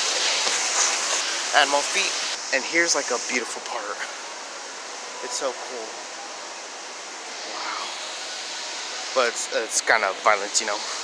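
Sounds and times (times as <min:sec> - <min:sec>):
store interior background noise: 0:00.0 - 0:11.0.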